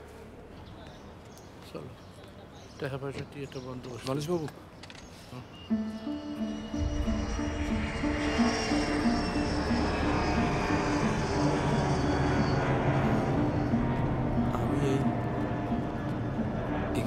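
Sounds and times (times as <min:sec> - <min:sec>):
high whine falling in pitch: 0:05.7 - 0:17.0
jet aircraft passing overhead: 0:05.7 - 0:17.0.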